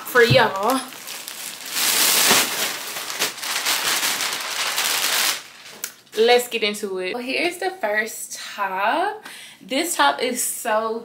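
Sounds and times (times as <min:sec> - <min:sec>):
plastic bag rustling and crinkling: 0:00.0 - 0:06.5.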